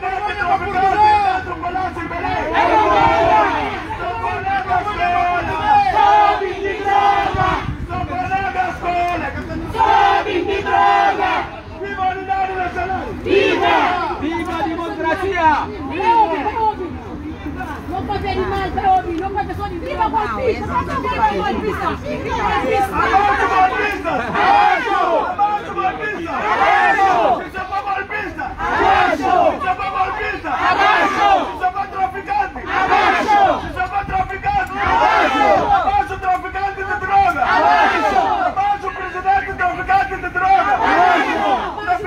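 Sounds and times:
crowd shouting slogans: 0:00.0 - 0:17.0, 0:18.2 - 0:42.0.

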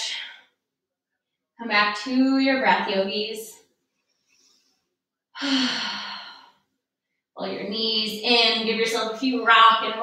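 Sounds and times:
woman sighing: 0:05.4 - 0:06.5.

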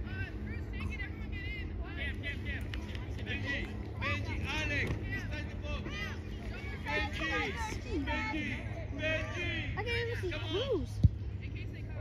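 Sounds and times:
distant voices calling and shouting: 0:00.0 - 0:12.0.

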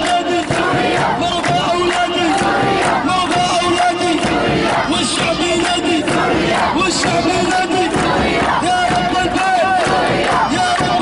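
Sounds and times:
crowd chanting slogans: 0:00.0 - 0:11.0
handclaps: 0:00.0 - 0:11.0.

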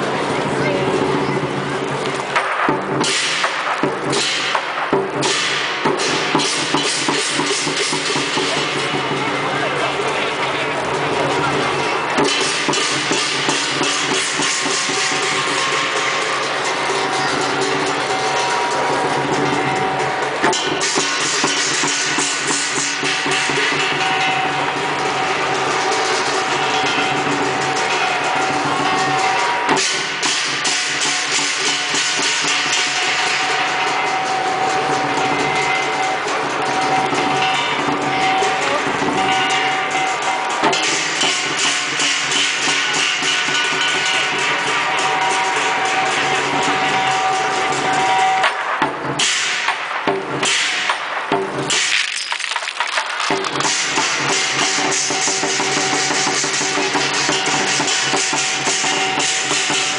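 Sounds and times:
cymbals crashing: 0:00.0 - 0:52.5, 0:53.1 - 0:59.9
lion drum beaten fast: 0:02.7 - 0:32.6.

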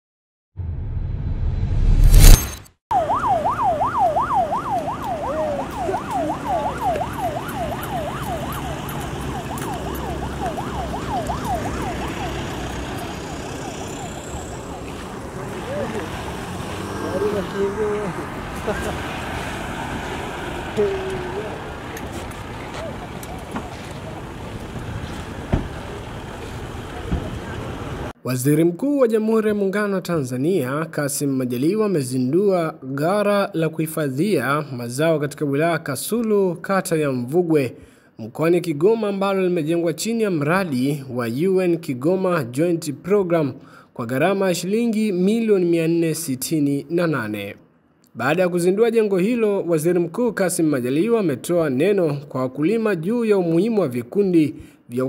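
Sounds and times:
road noise: 0:01.0 - 0:28.2
siren yelping: 0:02.9 - 0:18.1
faint voices: 0:20.7 - 0:24.7.

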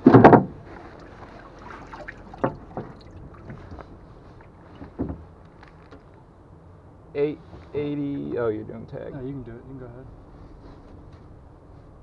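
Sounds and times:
low background noise: 0:00.0 - 0:12.0
water splashing in tank: 0:00.7 - 0:05.2.

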